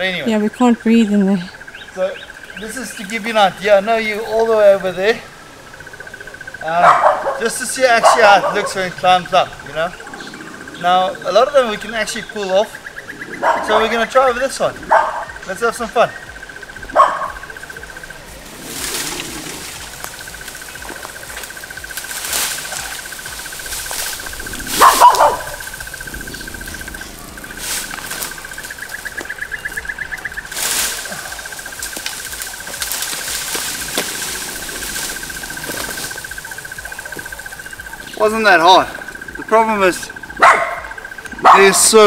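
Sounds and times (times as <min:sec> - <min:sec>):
rustling leaves: 0:00.0 - 0:42.0
stems crackling and snapping: 0:01.6 - 0:42.0
high pulsing buzz: 0:08.8 - 0:42.0.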